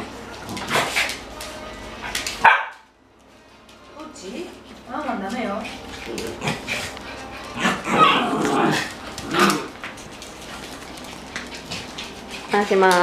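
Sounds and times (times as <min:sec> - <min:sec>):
dogs barking: 0:02.4 - 0:02.9, 0:06.3 - 0:09.8.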